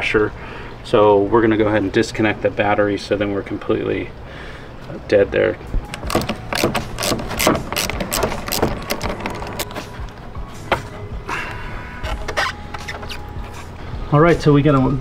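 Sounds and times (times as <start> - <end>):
background music: 5.3 - 15.0
ratchet wrench clicking: 5.9 - 9.9.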